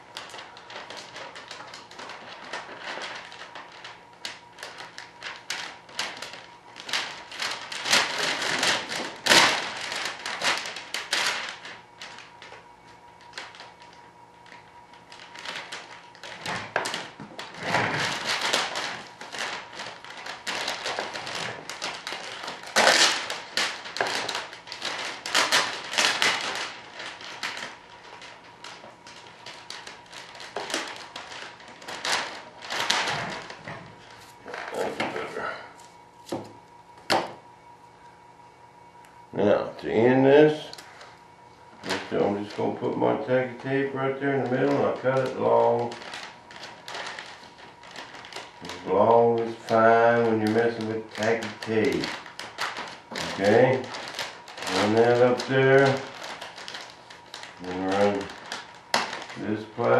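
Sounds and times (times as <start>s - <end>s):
plastic film crinkling: 0.0s - 59.9s.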